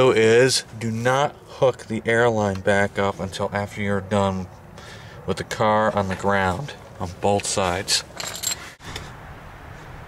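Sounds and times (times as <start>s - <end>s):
light metallic jingle: 8.2s - 8.8s.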